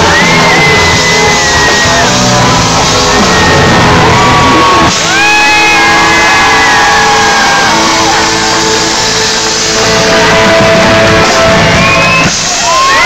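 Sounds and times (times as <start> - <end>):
rock band playing live: 0.0 - 13.0.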